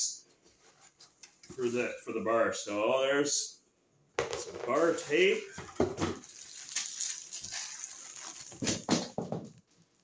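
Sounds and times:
plastic packaging rustling: 5.8s - 10.0s.

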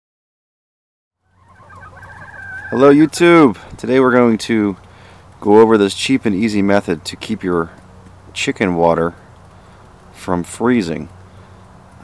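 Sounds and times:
low steady hum: 1.2s - 12.0s
chickens clucking faintly: 1.3s - 3.7s.

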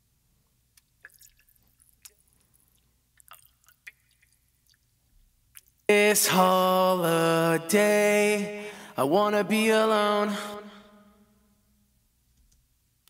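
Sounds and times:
mouth clicks and lip smacks: 0.7s - 4.9s, 5.5s - 5.9s.

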